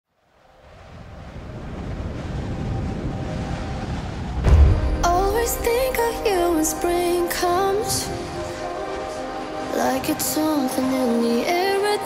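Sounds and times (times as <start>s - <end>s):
wind-like rushing noise: 0.1s - 12.0s.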